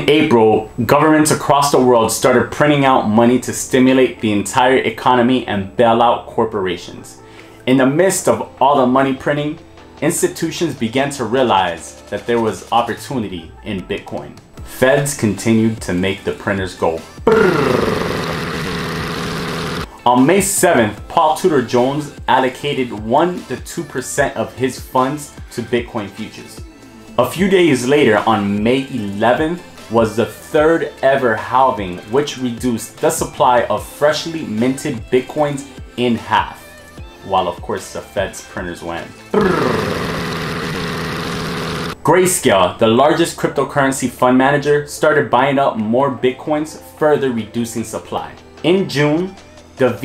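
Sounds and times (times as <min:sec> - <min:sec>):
buzzing brrr with fast rattle: 0:17.3 - 0:19.9, 0:39.4 - 0:42.0.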